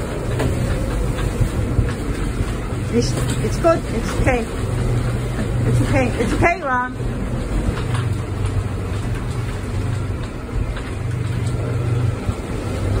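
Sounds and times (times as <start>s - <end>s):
rain: 0.0s - 13.0s
wind: 0.0s - 13.0s.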